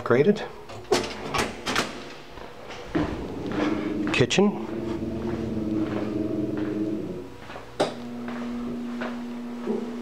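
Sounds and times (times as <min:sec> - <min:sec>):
low hum: 0:02.6 - 0:09.9.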